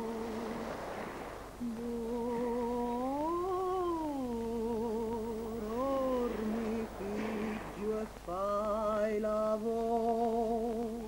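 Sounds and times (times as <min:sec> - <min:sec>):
person singing wordless melody: 0:00.0 - 0:00.8, 0:01.6 - 0:11.0.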